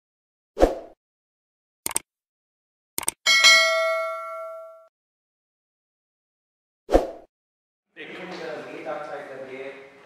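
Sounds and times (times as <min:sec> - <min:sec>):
notification bell ding: 0:03.3 - 0:04.9.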